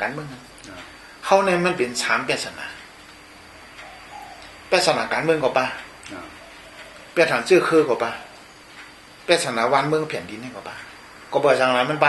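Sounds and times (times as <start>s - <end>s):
man speaking: 0.0s - 2.8s, 4.7s - 6.4s, 7.2s - 8.4s, 9.3s - 12.0s
faint bird call: 3.6s - 4.7s, 6.1s - 8.6s.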